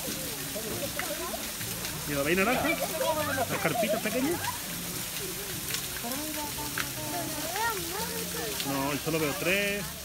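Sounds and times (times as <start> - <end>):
trickling water hiss: 0.0 - 10.0
people talking: 2.1 - 4.6, 6.0 - 10.0.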